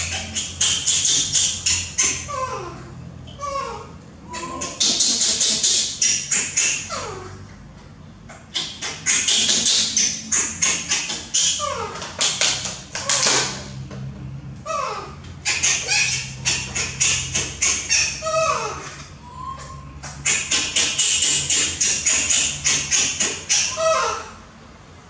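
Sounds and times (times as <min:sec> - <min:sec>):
baby monkey crying: 0:00.0 - 0:07.5, 0:08.6 - 0:12.4, 0:14.6 - 0:24.4.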